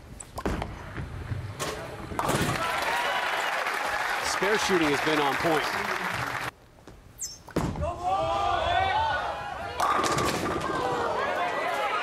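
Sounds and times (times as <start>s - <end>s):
crowd voices calling out: 7.8s - 12.0s.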